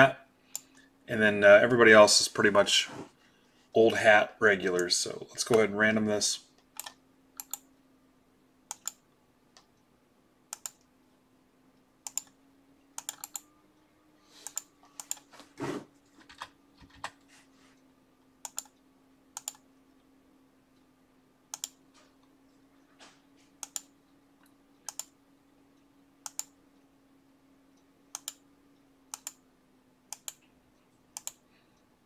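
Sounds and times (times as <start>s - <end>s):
faint steady hum: 0.0s - 32.0s
keyboard typing: 6.8s - 7.7s, 8.7s - 9.0s, 13.0s - 13.5s, 14.4s - 15.3s, 18.4s - 18.8s, 19.4s - 19.6s, 21.5s - 21.8s
mouse clicks: 6.8s - 7.7s, 8.7s - 9.0s, 10.5s - 10.9s, 12.0s - 12.4s, 13.0s - 13.5s, 18.4s - 18.8s, 19.4s - 19.6s, 21.5s - 21.8s, 23.6s - 23.9s, 24.8s - 25.1s, 26.2s - 26.6s, 28.1s - 28.4s, 29.1s - 29.4s, 30.1s - 30.5s, 31.2s - 31.4s.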